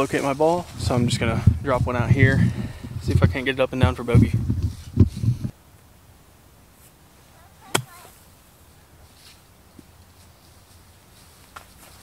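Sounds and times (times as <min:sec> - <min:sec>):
golf iron striking ball: 0:07.7 - 0:08.1.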